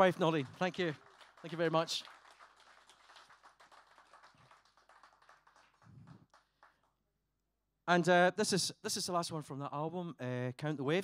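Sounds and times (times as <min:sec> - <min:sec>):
faint scattered applause: 0:00.0 - 0:07.0.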